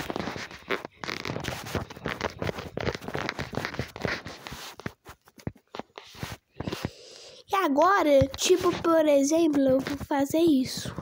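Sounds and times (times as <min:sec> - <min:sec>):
finger rubbing on touchscreen: 0:00.0 - 0:11.0.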